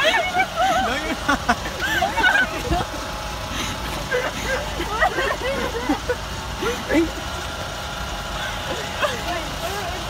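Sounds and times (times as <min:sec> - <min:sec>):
people laughing: 0:00.0 - 0:07.6, 0:08.3 - 0:10.0
steady low rumble: 0:00.0 - 0:10.0.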